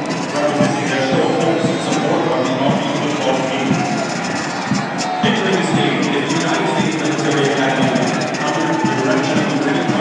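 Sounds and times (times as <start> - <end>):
brass marching band: 0.0 - 10.0
large stadium crowd noise: 0.0 - 10.0.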